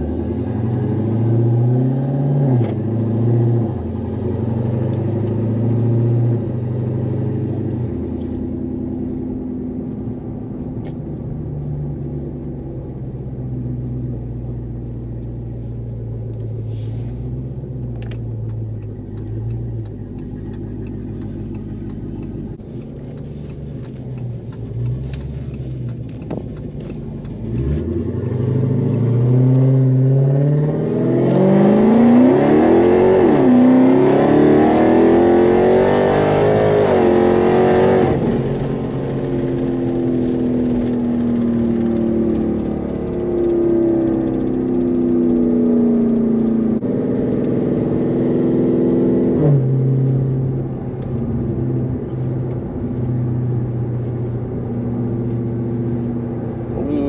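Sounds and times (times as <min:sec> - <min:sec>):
car engine accelerating: 0:00.0 - 0:57.0.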